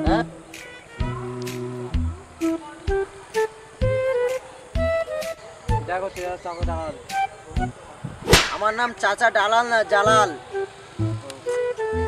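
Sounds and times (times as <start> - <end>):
sharp slap: 8.2 - 8.8
man's voice: 8.6 - 10.4.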